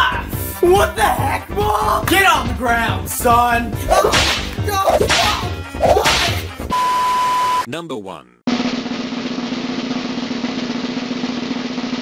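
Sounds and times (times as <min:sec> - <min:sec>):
snare drum roll: 0:08.5 - 0:12.0.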